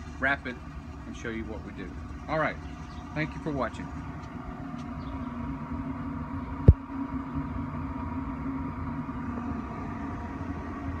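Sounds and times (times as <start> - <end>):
smoker fan humming: 0.0 - 11.0.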